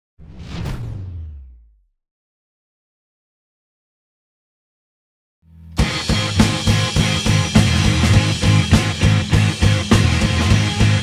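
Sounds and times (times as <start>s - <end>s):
whoosh sound effect: 0.2s - 1.9s.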